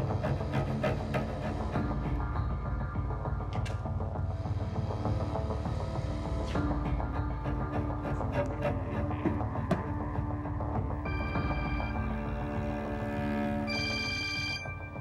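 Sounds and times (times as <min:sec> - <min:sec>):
tense dark score music: 0:00.0 - 0:15.0.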